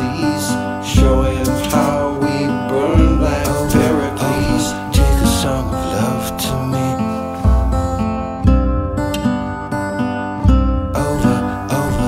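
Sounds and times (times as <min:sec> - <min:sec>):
strummed guitar chords: 0:00.0 - 0:12.0.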